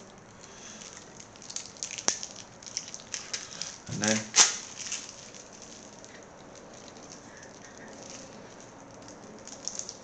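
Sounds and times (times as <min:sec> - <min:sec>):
packaging crackling and clicking: 0:00.0 - 0:10.0.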